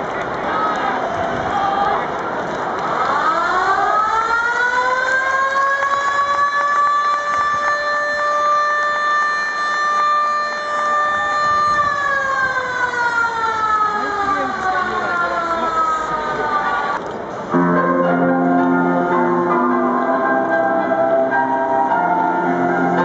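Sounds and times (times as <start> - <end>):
crowd noise: 0.0 - 23.0
stadium siren wailing: 2.8 - 23.0.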